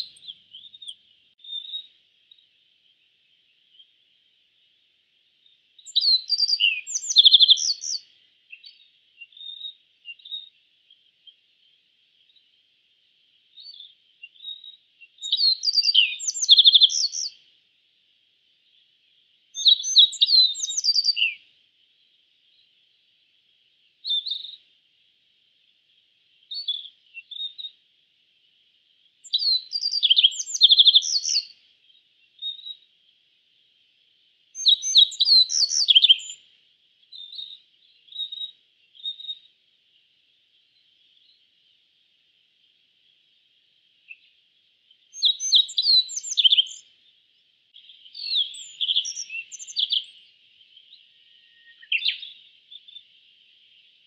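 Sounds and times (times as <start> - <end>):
faint high hiss: 0.0 - 54.0.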